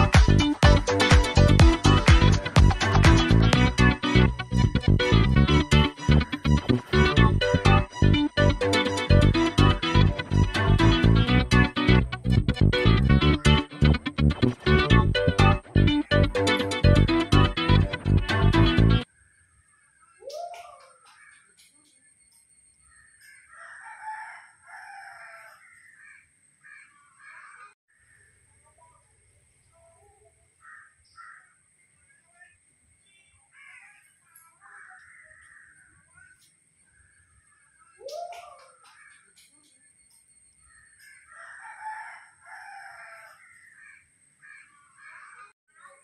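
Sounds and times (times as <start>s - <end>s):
faint bird calling: 20.0s - 22.1s, 29.8s - 41.7s
rooster crowing: 23.3s - 27.6s, 41.0s - 45.4s.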